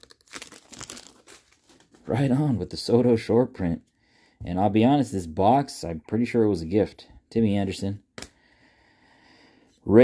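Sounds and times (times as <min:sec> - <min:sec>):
foil wrapper crinkling: 0:00.0 - 0:02.1.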